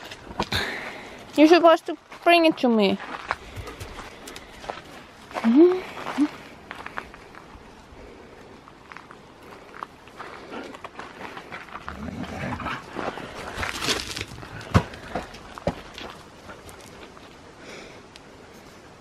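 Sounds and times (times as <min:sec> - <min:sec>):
dogs moving on gravel: 0:08.5 - 0:17.4.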